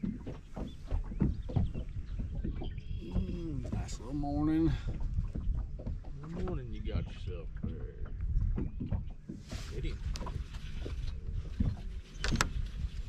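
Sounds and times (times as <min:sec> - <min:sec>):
water lapping against boat hull: 0:00.0 - 0:13.0.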